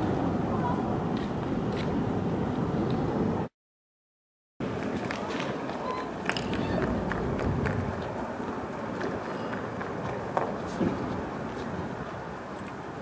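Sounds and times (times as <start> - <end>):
steady outdoor rush: 0.0 - 3.5, 4.6 - 13.0
voices: 5.0 - 11.2.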